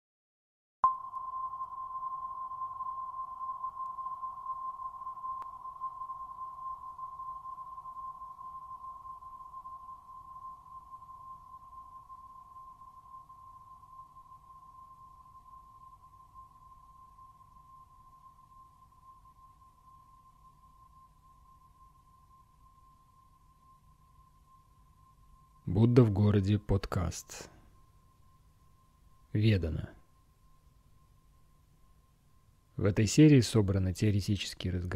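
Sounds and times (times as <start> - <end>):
meditation bell ringing: 0.8 - 26.0.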